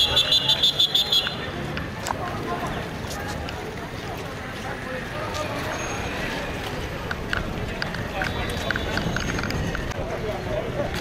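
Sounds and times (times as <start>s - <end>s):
people talking: 0.0s - 11.0s
street noise: 0.0s - 11.0s.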